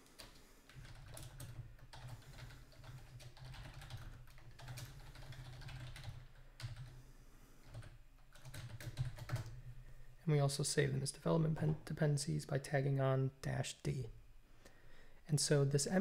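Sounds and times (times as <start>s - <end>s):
computer keyboard typing: 0.1s - 7.0s, 7.6s - 9.6s.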